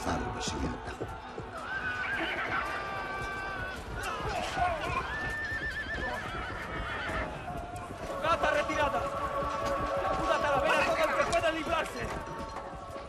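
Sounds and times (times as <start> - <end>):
clatter of hooves: 0.0 - 13.0
horses whinnying: 1.6 - 11.4.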